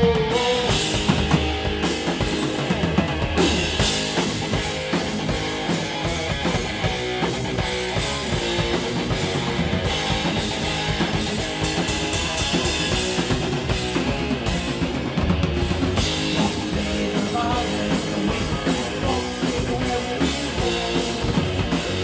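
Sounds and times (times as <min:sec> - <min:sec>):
bass guitar: 0:00.0 - 0:22.0
drum kit with cymbal crashes: 0:00.0 - 0:22.0
electric guitar: 0:00.0 - 0:22.0.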